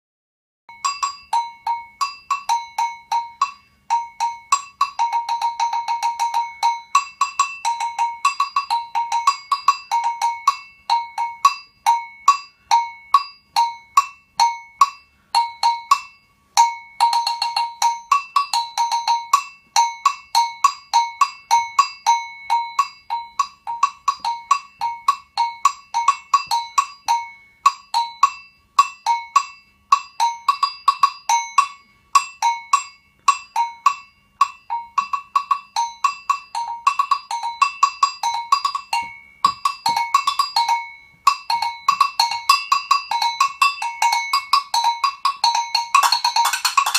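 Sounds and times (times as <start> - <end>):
double bell struck with stick: 0.7 - 46.9.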